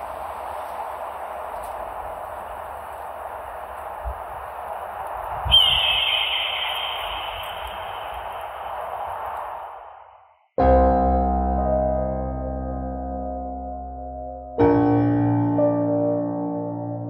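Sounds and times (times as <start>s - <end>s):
ambient hiss: 0.0s - 10.3s
bird of prey screeching: 5.5s - 8.5s.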